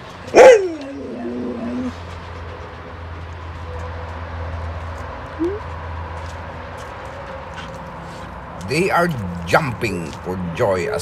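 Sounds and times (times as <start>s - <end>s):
dog whining: 0.3s - 2.1s, 5.4s - 5.7s.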